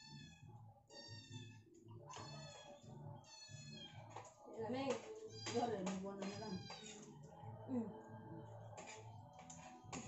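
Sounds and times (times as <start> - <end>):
cat meowing: 0.0 - 4.0, 6.2 - 7.0.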